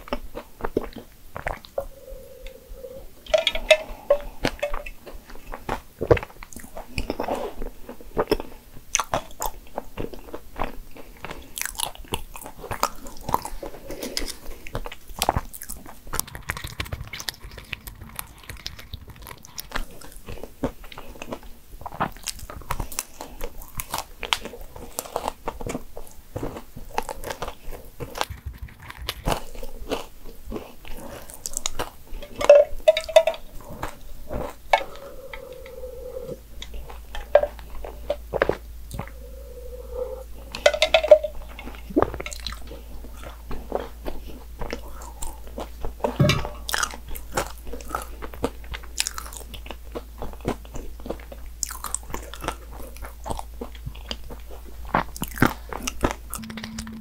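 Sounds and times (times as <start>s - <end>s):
close chewing mouth sounds: 0.0s - 56.9s
short humming tones: 56.4s - 57.0s.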